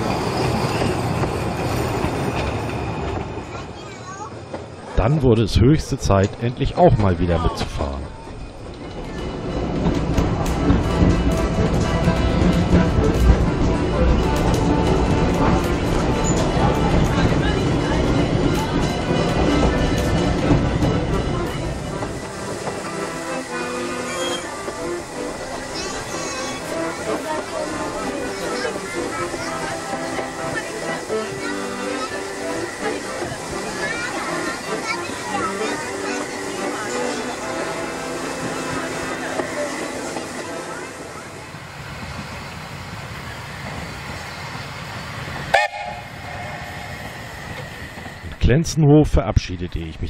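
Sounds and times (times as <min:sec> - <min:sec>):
train running rumble: 0:00.0 - 0:50.0
music: 0:09.1 - 0:41.3.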